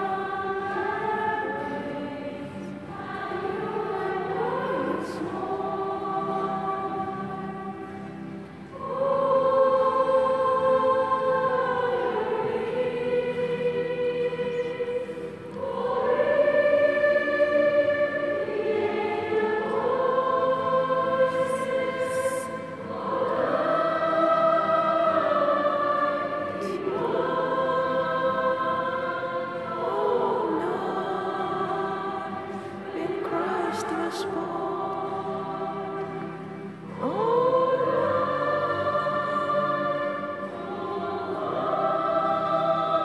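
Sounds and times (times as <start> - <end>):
choir singing a hymn: 0.0 - 43.0.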